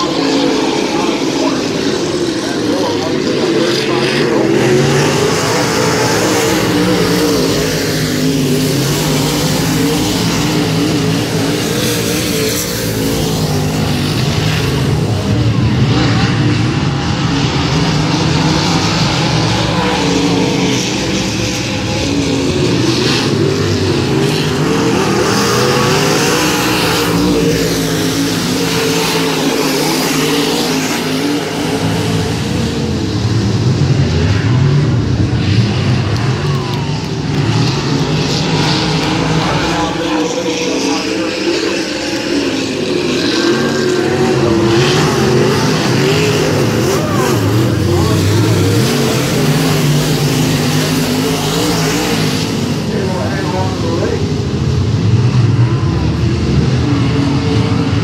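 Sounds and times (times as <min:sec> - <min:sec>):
race car engines lapping: 0:00.0 - 0:58.0.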